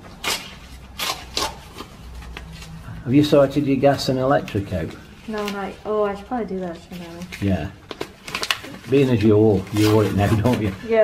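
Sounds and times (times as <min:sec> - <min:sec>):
paper envelope tearing: 0:00.1 - 0:02.8, 0:07.2 - 0:11.0.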